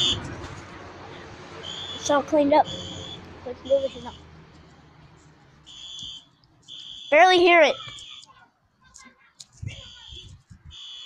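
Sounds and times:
faint fire alarm beeping: 5.7s - 8.4s, 9.7s - 11.0s.

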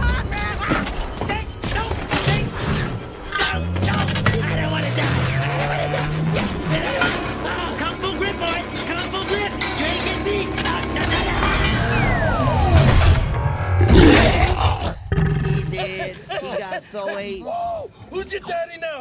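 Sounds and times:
loud impact: 12.6s - 15.2s.

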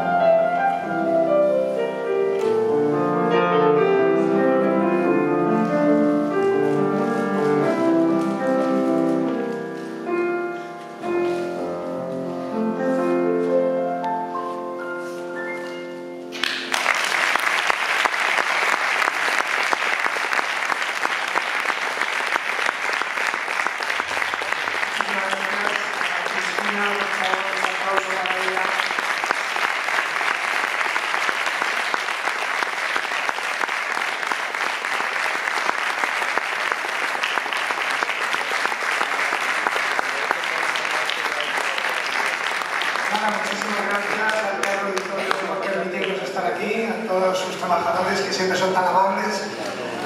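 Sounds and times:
audience applauding: 16.3s - 46.5s.

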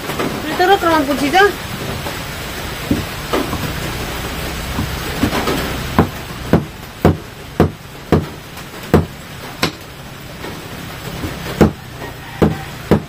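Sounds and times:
steady hiss: 0.0s - 13.0s
sharp knocks on a table: 2.9s - 3.8s, 8.9s - 9.8s.

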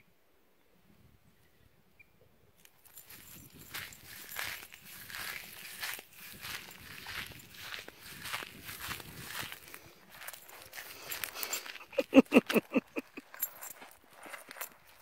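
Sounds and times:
footsteps on gravel: 2.8s - 15.0s.

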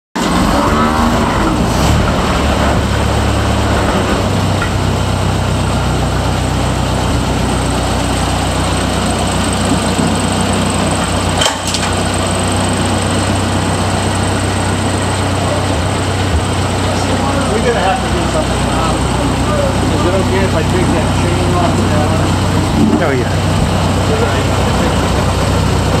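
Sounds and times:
truck engine idling: 0.2s - 26.0s.

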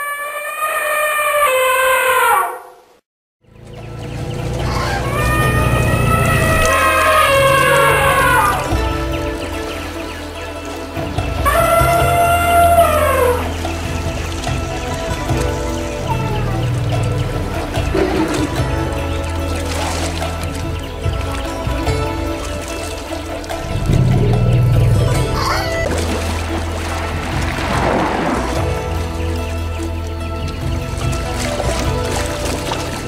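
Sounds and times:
elephant trumpeting: 0.0s - 2.9s, 4.4s - 29.4s
background music with deep bass: 3.4s - 33.0s.

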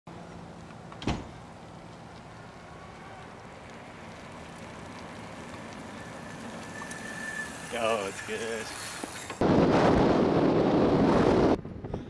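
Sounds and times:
low street hum: 0.1s - 12.0s
loud thump: 1.0s - 1.4s.

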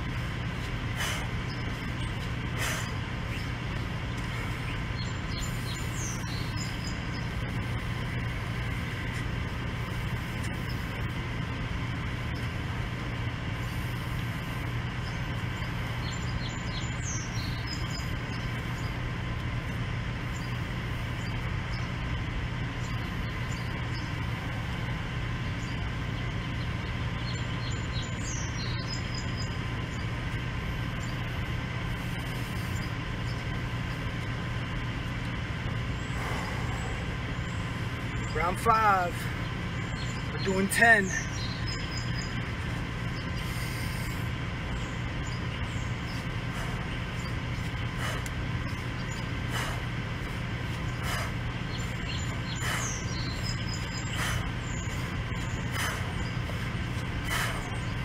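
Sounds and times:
mechanical hum: 0.0s - 58.0s.

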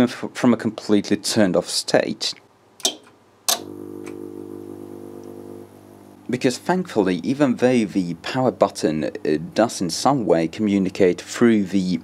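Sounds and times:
low electrical hum: 0.0s - 12.0s
switch click: 2.8s - 4.2s.

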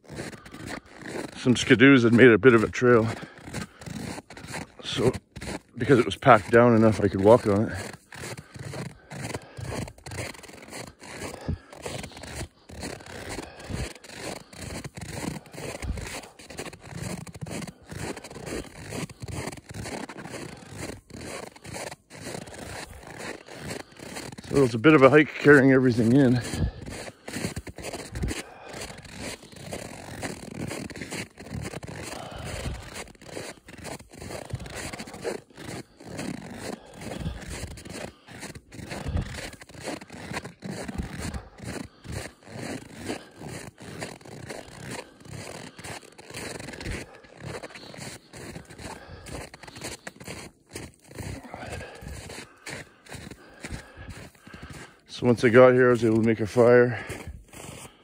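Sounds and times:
footsteps crunching on snow: 0.0s - 58.0s.

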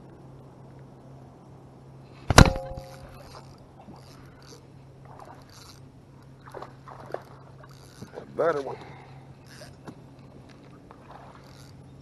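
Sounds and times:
sharp ringing knock: 2.3s - 3.2s.

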